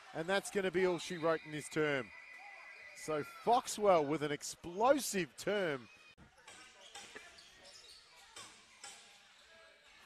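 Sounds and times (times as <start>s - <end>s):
indoor arena hum: 0.0s - 10.0s.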